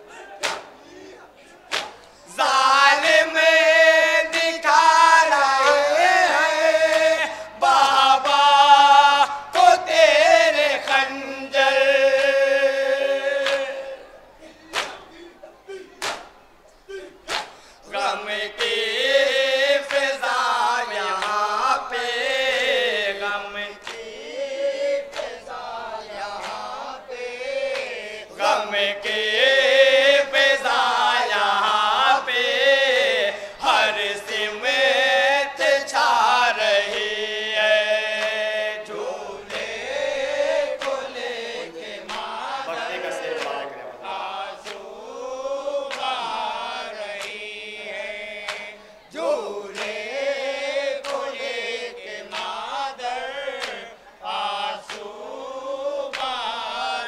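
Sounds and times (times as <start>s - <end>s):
men chanting in unison: 0.0s - 16.3s, 16.9s - 57.0s
chest-beating slaps: 0.4s - 0.8s, 1.7s - 2.1s, 14.7s - 15.0s, 16.0s - 16.3s, 17.2s - 17.6s.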